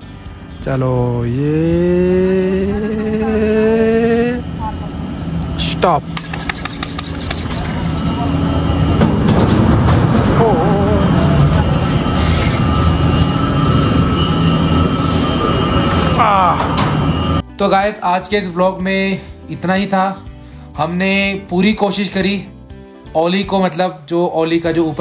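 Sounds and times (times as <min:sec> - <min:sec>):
chairlift machinery hum: 0:01.4 - 0:17.4
rising tone: 0:07.7 - 0:17.4.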